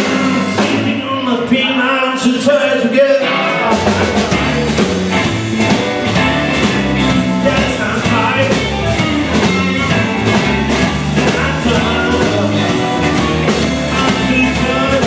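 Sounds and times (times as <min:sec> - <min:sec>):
drum kit steady beat: 0:00.0 - 0:01.1, 0:03.6 - 0:15.0
man singing: 0:00.0 - 0:04.9, 0:06.7 - 0:15.0
bass guitar: 0:00.0 - 0:15.0
electric guitars: 0:00.0 - 0:15.0.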